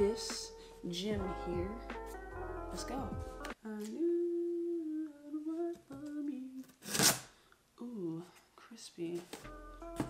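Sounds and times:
background music: 0:00.0 - 0:03.6, 0:09.3 - 0:10.0.

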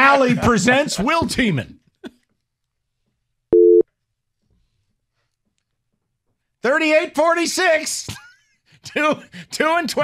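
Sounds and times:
short electronic beep: 0:03.6 - 0:03.8.

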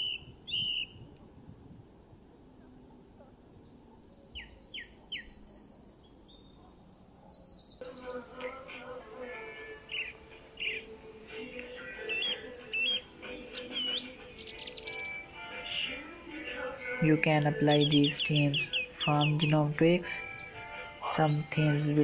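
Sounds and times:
birds chirping and trilling: 0:00.0 - 0:01.0, 0:03.3 - 0:22.0
soft background music: 0:07.8 - 0:22.0.

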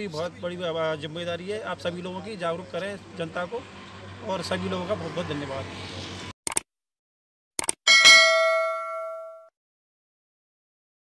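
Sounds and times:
notification bell ding: 0:07.9 - 0:09.5.

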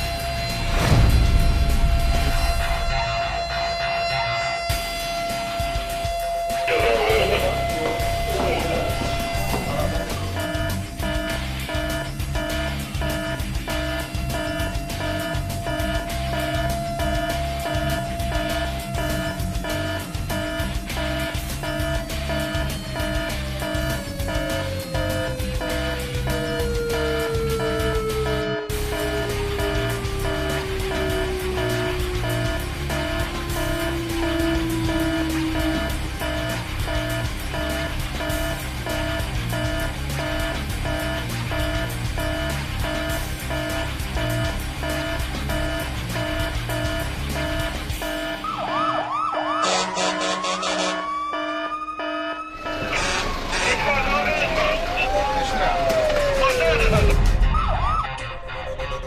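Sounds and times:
background music with steady beat: 0:00.0 - 0:52.0, 0:53.7 - 0:59.0
fire engine siren wailing: 0:00.0 - 0:58.5.

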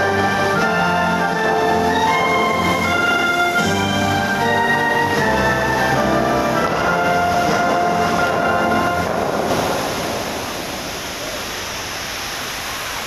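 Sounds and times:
orchestral music: 0:00.0 - 0:10.8
fountain water rushing: 0:00.0 - 0:13.0.

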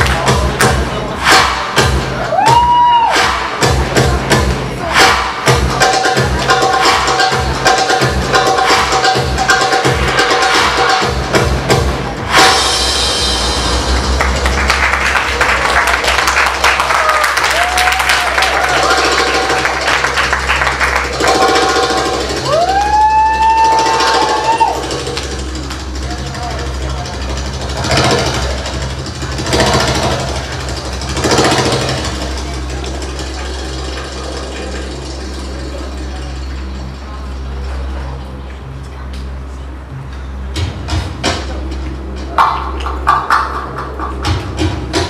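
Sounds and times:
audience clapping and cheering: 0:00.0 - 0:04.2, 0:13.5 - 0:27.1, 0:42.4 - 0:45.0
crowd voices: 0:00.0 - 0:45.0
rising whoops: 0:02.2 - 0:03.4, 0:16.6 - 0:19.1, 0:22.4 - 0:25.0.

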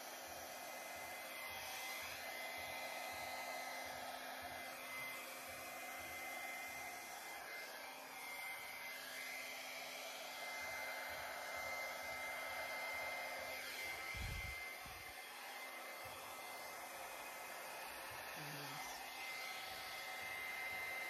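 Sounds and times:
hair dryer blowing air: 0:00.0 - 0:21.0.

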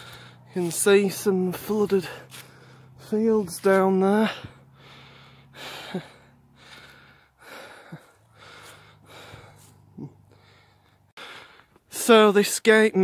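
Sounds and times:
person breathing hard: 0:00.0 - 0:00.5, 0:02.1 - 0:03.1, 0:04.2 - 0:11.9.

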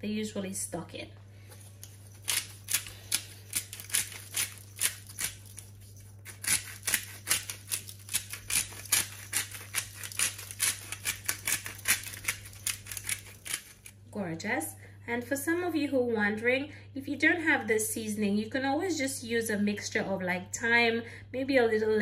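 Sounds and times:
spice grinder clicking: 0:02.2 - 0:05.6, 0:06.3 - 0:13.9.

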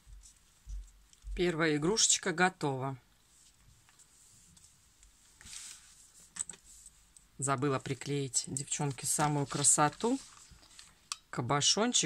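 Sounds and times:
soft rustle of craft pieces: 0:00.0 - 0:11.3.

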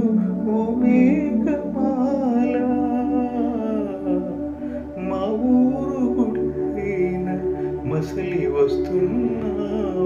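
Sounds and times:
musical accompaniment: 0:00.0 - 0:10.0
person singing long wavering note: 0:00.0 - 0:10.0.

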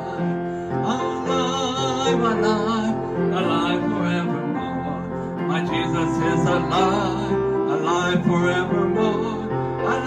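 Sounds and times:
electronic organ: 0:00.0 - 0:10.0
man singing a hymn: 0:00.0 - 0:10.0
upright piano: 0:00.0 - 0:10.0.

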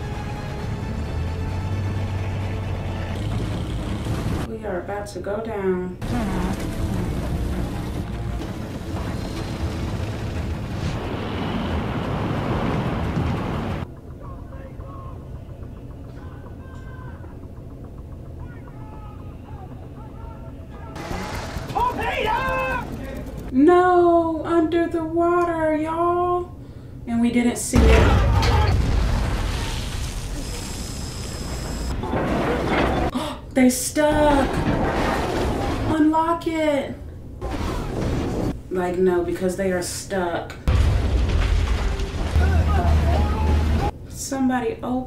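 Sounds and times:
voices: 0:14.1 - 0:26.5.

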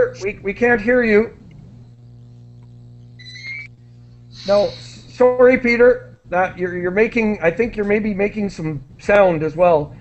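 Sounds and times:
low electrical hum: 0:00.0 - 0:10.0
high-pitched tone: 0:03.2 - 0:03.8.

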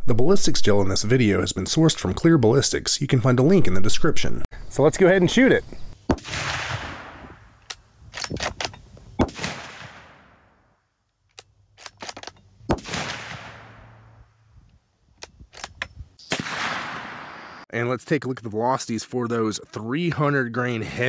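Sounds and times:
rifle shots with rolling echo: 0:06.1 - 0:07.6, 0:08.2 - 0:10.7, 0:12.7 - 0:14.3, 0:16.3 - 0:17.6
rifle bolt metallic clicks: 0:07.6 - 0:08.8, 0:11.3 - 0:12.9, 0:15.2 - 0:16.0.

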